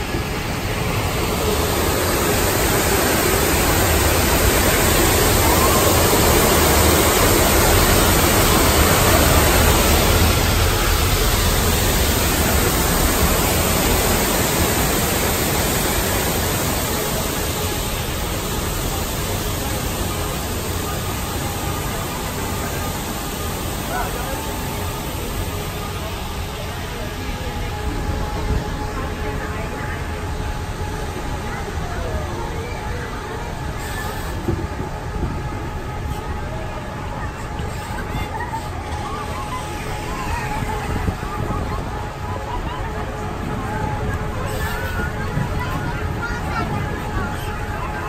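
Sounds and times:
monorail train rushing: 0:00.0 - 0:48.0.

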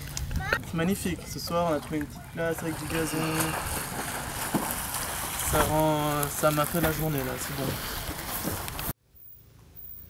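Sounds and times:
man speaking: 0:00.6 - 0:03.7, 0:05.5 - 0:07.8.

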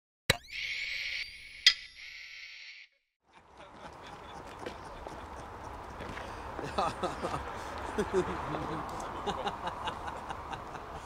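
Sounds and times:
faint outdoor ambience: 0:03.3 - 0:11.0.

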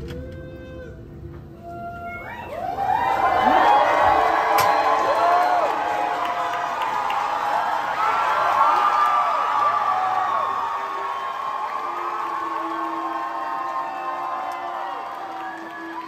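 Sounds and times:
crowd cheering and whooping: 0:01.6 - 0:16.0.

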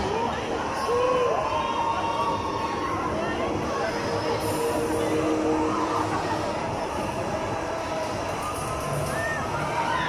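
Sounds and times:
spinning ride mechanical running noise: 0:00.0 - 0:10.0.

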